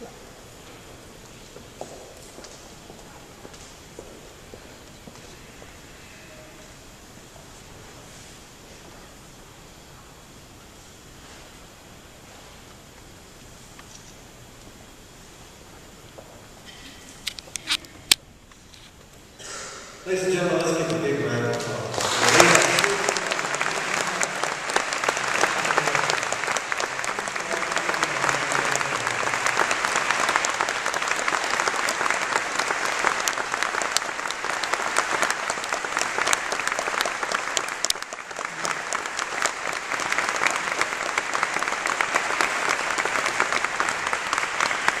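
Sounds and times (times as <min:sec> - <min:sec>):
large audience applauding: 0:20.1 - 0:45.0.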